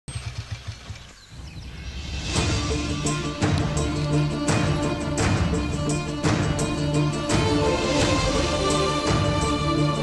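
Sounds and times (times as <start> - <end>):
engine thumping rhythmically: 0.1 - 1.4, 2.4 - 10.0.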